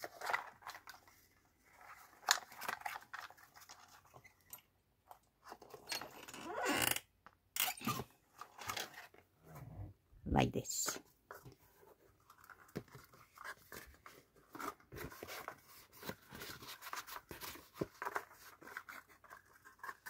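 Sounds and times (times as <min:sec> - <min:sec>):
card and paper rustling: 0:00.0 - 0:04.4, 0:11.0 - 0:20.0.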